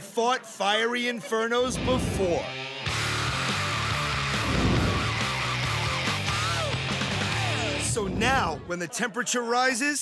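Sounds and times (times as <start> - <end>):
music with stepping bass line: 1.7 - 8.2.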